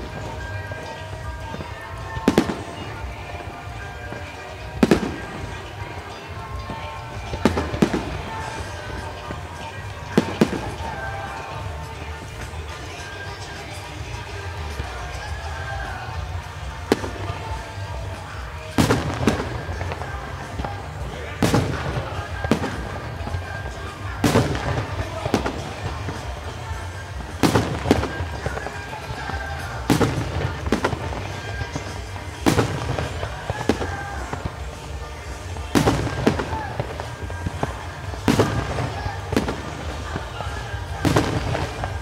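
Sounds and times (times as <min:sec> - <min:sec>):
fireworks bursting: 0:00.0 - 0:42.0.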